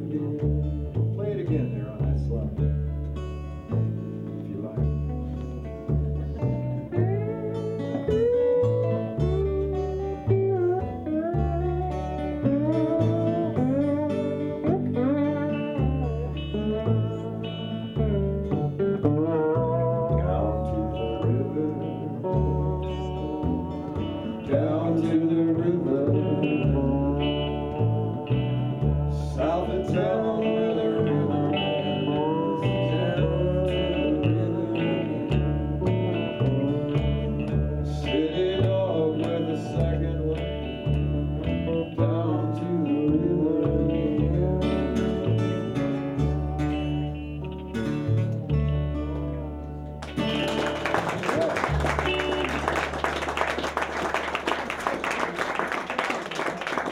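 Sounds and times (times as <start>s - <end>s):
live folk band playing: 0.0s - 56.9s
upright bass line: 0.0s - 56.9s
audience applause: 50.0s - 56.9s.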